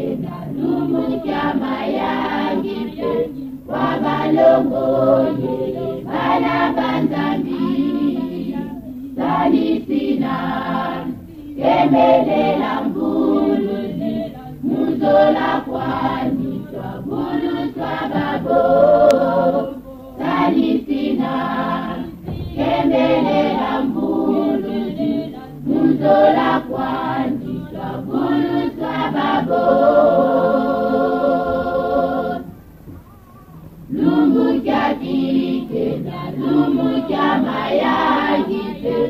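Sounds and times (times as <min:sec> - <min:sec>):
choir singing: 0:00.0 - 0:39.0.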